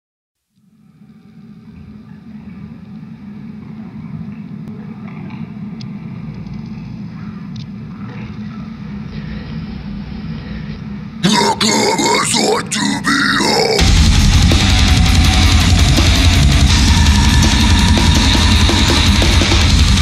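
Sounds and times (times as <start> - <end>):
low rumbling drone: 6.0 - 11.3, 13.5 - 20.0.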